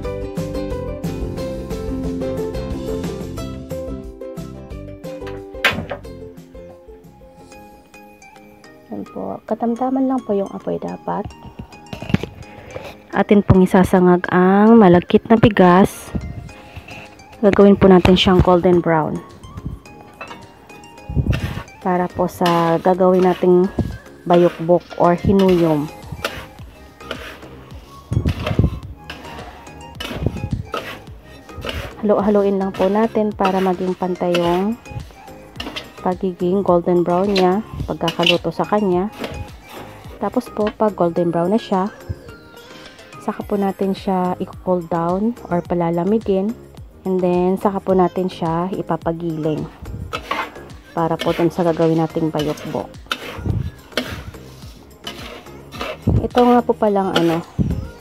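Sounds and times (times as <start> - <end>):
metal spatula scraping wok: 11.8 - 13.8, 15.6 - 45.0, 48.2 - 58.0
rice grains rattling in pan: 50.2 - 56.6.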